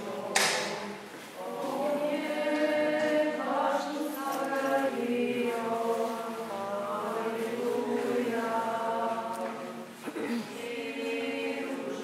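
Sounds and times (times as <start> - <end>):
choir chanting long notes: 0.0 - 12.0.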